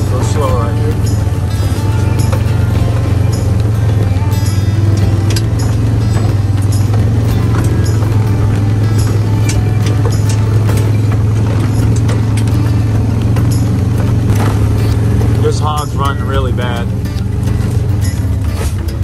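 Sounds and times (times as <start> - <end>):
knocks and rattles: 0.0 - 19.0
vehicle driving through brush: 0.0 - 19.0
vehicle engine droning: 0.0 - 19.0.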